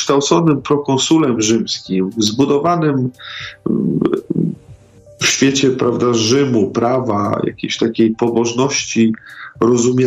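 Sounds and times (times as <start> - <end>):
man breathing: 3.2 - 3.7, 9.2 - 9.6
creaky throat hesitation sound: 3.6 - 4.6.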